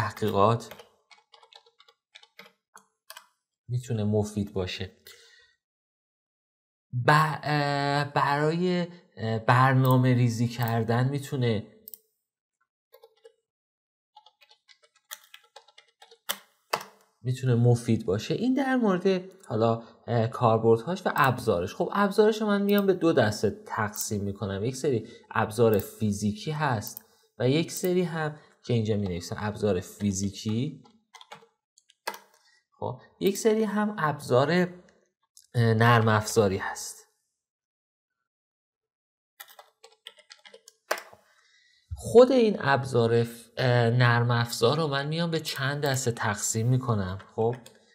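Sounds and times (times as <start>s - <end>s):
typing on a keyboard: 0.2s - 3.3s, 14.2s - 17.0s, 31.2s - 31.5s, 39.4s - 41.1s.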